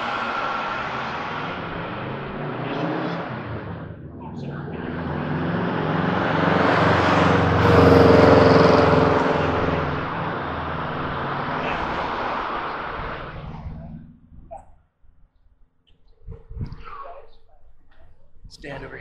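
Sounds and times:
car passing: 0.0s - 14.4s.

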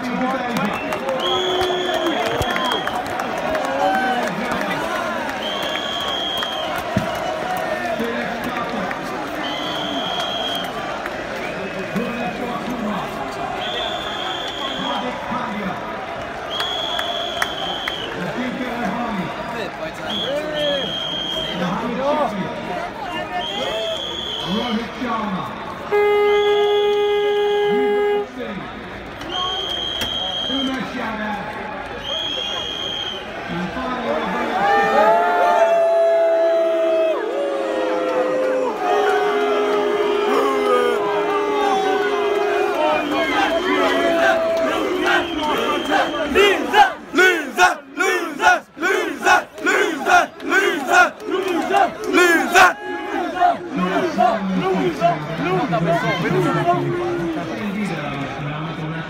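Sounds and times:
crowd clapping: 0.0s - 21.3s, 29.0s - 33.1s, 34.9s - 58.4s
high whistle-like tones: 5.4s - 7.2s, 9.4s - 10.7s, 13.6s - 15.0s, 20.1s - 21.7s, 23.4s - 24.7s, 29.2s - 30.8s, 32.0s - 33.3s
horn blast: 25.8s - 28.4s
crowd shouting and chanting: 32.6s - 59.0s.

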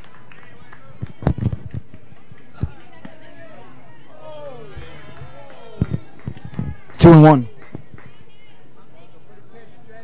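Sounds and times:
people shouting encouragement: 2.5s - 7.5s.

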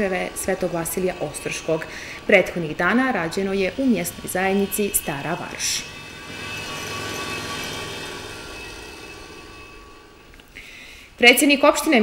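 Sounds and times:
road roller engine running: 0.0s - 10.6s.

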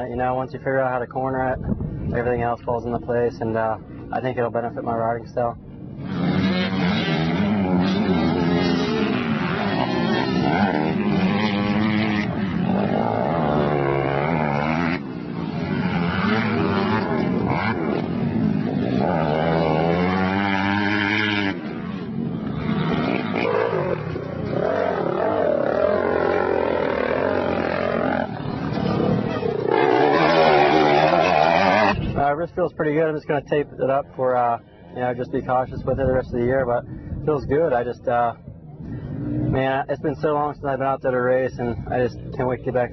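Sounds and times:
motocross bike engine revving: 3.8s - 33.2s.

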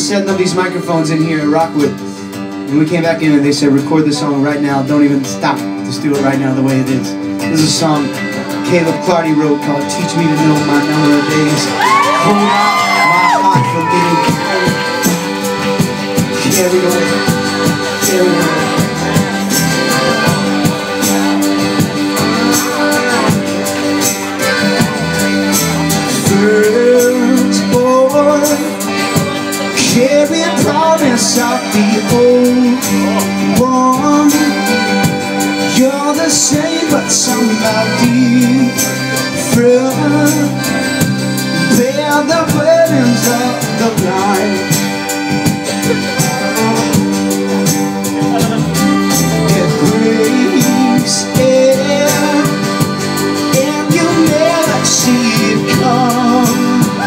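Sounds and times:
accordion holding chords: 0.0s - 57.0s
strummed acoustic guitars: 0.0s - 57.0s.

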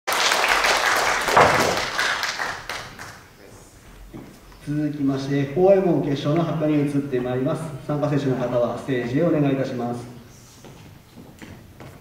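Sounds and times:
audience clapping: 0.1s - 3.3s.

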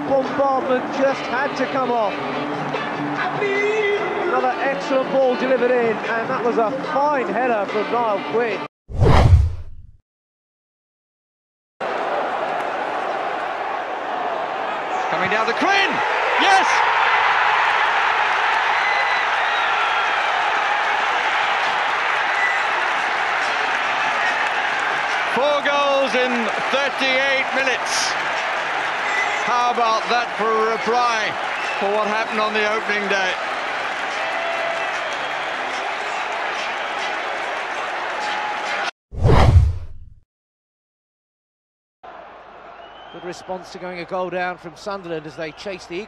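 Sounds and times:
stadium crowd cheering and applauding: 0.0s - 6.9s, 11.8s - 38.9s, 42.0s - 46.0s
whoosh transition effect: 8.9s - 9.9s.

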